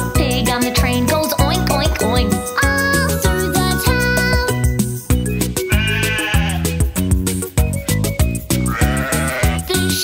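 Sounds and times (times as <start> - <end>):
bouncy children's song music: 0.0 - 10.0
sheep bleating: 5.6 - 6.8, 8.7 - 9.9.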